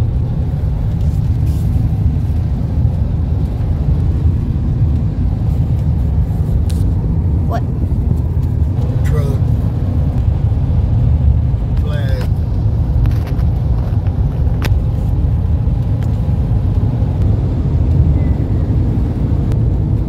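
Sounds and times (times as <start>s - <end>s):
car cabin road and engine rumble: 0.0s - 20.0s.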